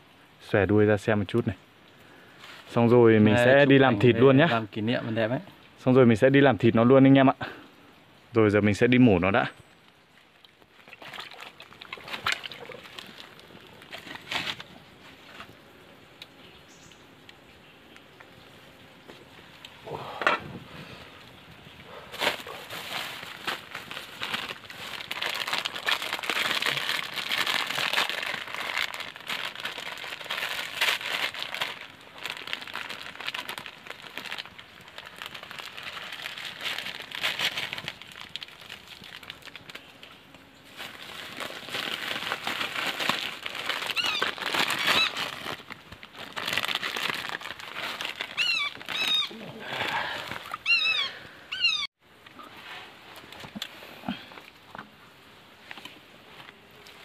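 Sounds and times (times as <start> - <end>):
plastic packets crinkling: 10.3 - 15.6, 22.1 - 51.9.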